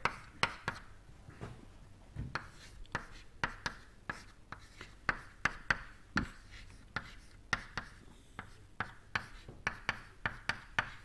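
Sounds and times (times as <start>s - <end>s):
chalk tapping and scraping on blackboard: 0.0s - 0.9s, 2.3s - 11.0s.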